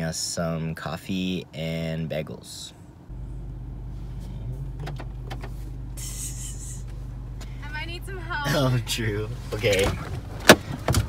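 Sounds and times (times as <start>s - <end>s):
car engine idling: 2.8s - 11.0s.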